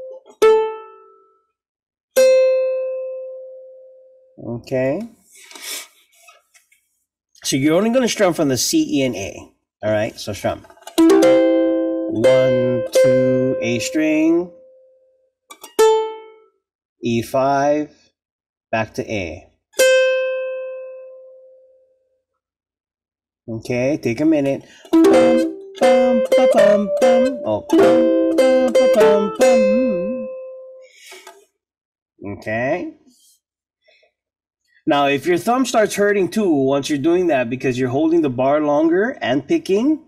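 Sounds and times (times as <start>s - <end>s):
ukulele note ringing: 10.9s - 14.2s, 24.9s - 30.8s.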